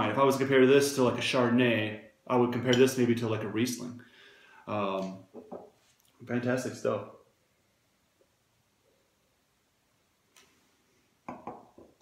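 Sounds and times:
wine glass knocking on table: 0:11.3 - 0:11.9.

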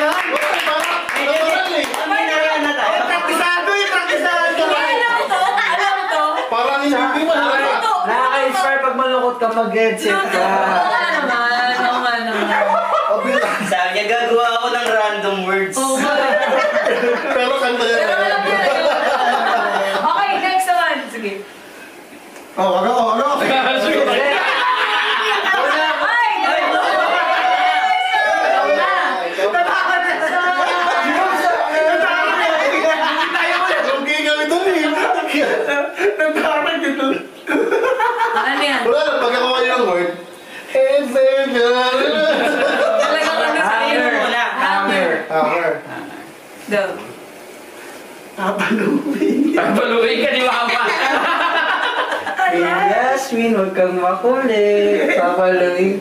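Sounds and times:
people laughing: 0:00.0 - 0:08.4, 0:10.0 - 0:14.3, 0:15.8 - 0:20.6, 0:23.3 - 0:40.0, 0:40.9 - 0:46.3, 0:48.7 - 0:52.9
group talking and chuckling: 0:00.0 - 0:08.8, 0:10.0 - 0:14.4, 0:15.8 - 0:21.2, 0:23.2 - 0:46.4, 0:48.6 - 0:52.9
voices: 0:00.0 - 0:56.0.

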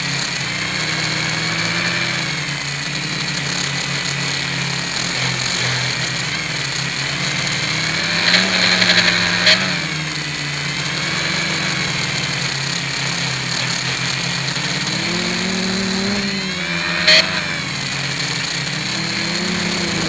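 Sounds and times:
drone motors and propellers: 0:00.0 - 0:20.0.

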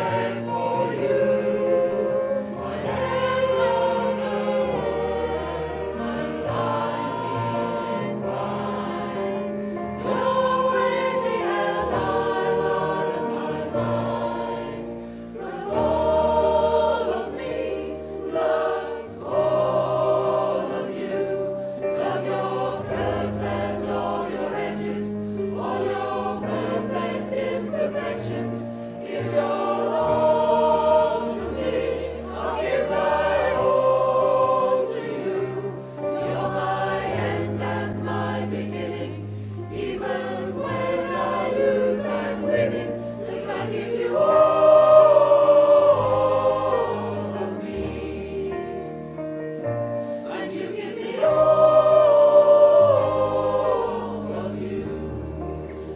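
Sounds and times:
mixed choir singing: 0:00.0 - 0:55.9.

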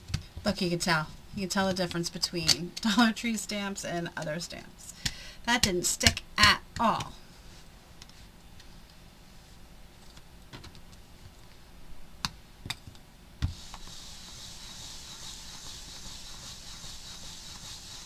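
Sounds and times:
steady soft hiss: 0:00.0 - 0:18.0.

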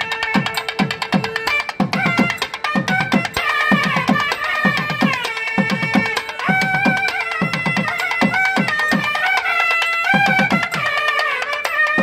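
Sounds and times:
double-reed pipes melody: 0:00.0 - 0:12.0.

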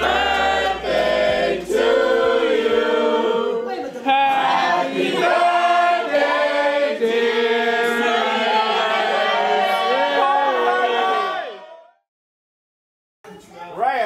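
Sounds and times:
group singing in harmony: 0:00.0 - 0:11.6.

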